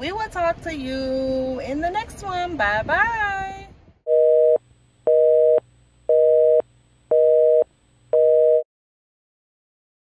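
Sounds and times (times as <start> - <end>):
telephone busy signal: 4.1 - 8.7.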